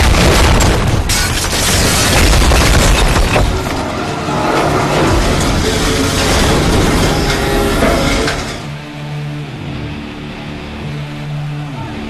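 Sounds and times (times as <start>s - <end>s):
low rumble: 0.0s - 9.4s
faint music: 7.5s - 12.0s.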